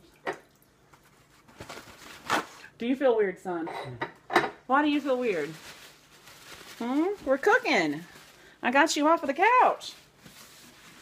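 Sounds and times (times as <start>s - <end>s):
paper towels rustling: 0.9s - 2.7s, 4.7s - 11.0s
paper towel tearing: 1.3s - 2.7s.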